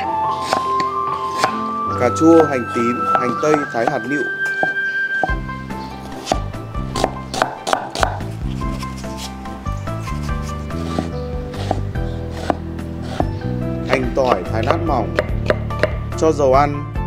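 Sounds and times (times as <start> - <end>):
background music with bass: 0.0 - 17.0
cleaver knocking on chopping board: 1.3 - 1.6, 2.4 - 5.4, 6.2 - 8.2, 10.9 - 11.8, 14.0 - 16.0.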